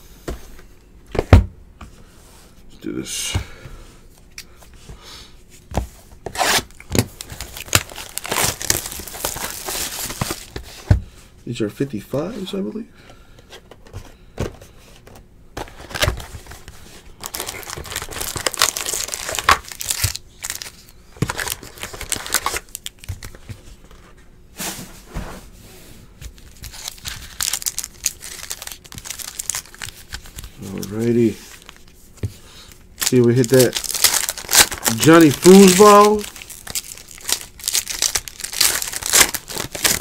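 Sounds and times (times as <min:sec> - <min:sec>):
foil packs crinkling: 0:06.3 - 0:10.6, 0:15.6 - 0:23.4, 0:26.3 - 0:40.0.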